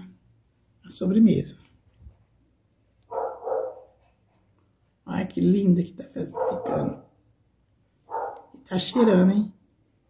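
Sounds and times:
small dog barking: 0:03.1 - 0:04.0, 0:06.4 - 0:07.0, 0:08.1 - 0:09.2.

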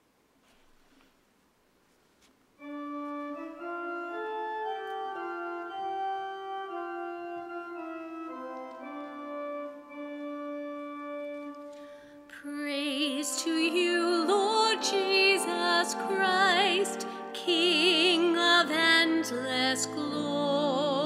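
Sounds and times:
church organ slow held chords: 0:02.6 - 0:21.0.

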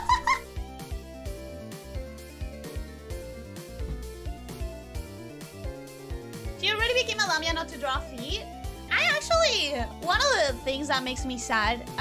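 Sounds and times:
soft background music with beat: 0:00.0 - 0:12.0.

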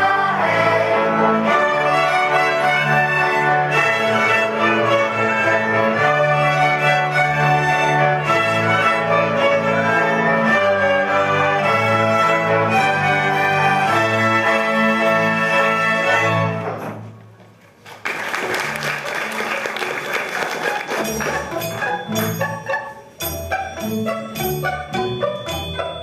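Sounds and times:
violins playing folk tune: 0:00.0 - 0:17.0, 0:20.6 - 0:26.0
double bass: 0:21.0 - 0:26.0.

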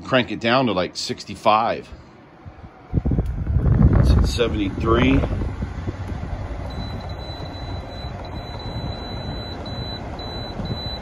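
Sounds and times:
air conditioner fan noise: 0:00.0 - 0:11.0
high electronic beeps: 0:06.7 - 0:11.0.

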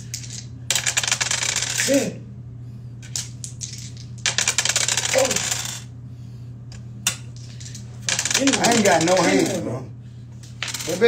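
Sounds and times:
dice clattering: 0:00.0 - 0:01.9, 0:03.0 - 0:05.8, 0:07.4 - 0:09.6, 0:10.4 - 0:11.0.

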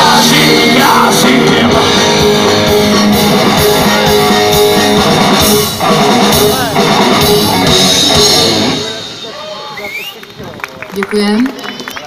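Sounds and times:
live rock band playing: 0:00.0 - 0:10.4.

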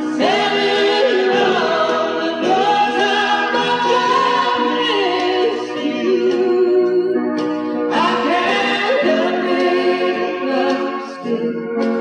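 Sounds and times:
voices singing in harmony: 0:00.0 - 0:07.2, 0:07.9 - 0:12.0
live band playing: 0:00.0 - 0:12.0.

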